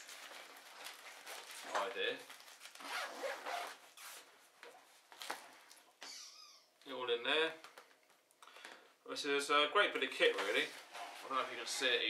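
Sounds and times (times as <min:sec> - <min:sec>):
fabric rustling: 0:00.0 - 0:05.7
zip pulled open: 0:02.8 - 0:04.2.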